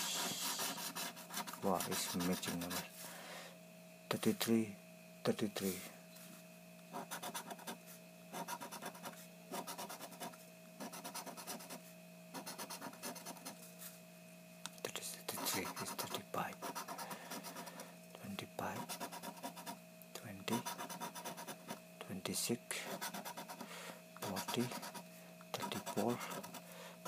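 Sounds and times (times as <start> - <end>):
coin scratching lottery ticket: 0.0 - 2.8, 6.9 - 7.8, 8.4 - 11.8, 12.4 - 13.5, 15.3 - 17.8, 18.8 - 19.8, 20.5 - 21.8, 22.9 - 23.6, 24.2 - 25.0, 25.6 - 26.6.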